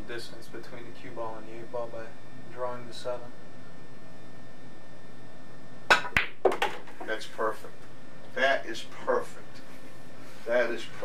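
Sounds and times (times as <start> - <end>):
cue tip striking ball: 5.9 - 7.0
balls knocking on table: 5.9 - 7.1
pool balls clicking: 5.9 - 7.1.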